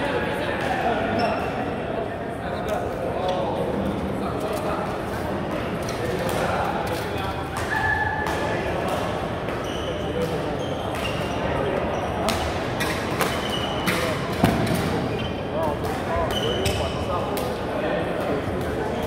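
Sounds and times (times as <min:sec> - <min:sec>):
players' voices: 0:00.0 - 0:19.0
shoes squeaking on floor: 0:09.5 - 0:14.2, 0:15.0 - 0:15.6, 0:16.2 - 0:17.1.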